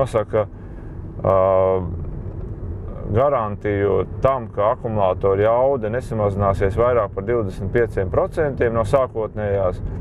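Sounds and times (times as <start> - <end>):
car interior rumble: 0.0 - 10.0.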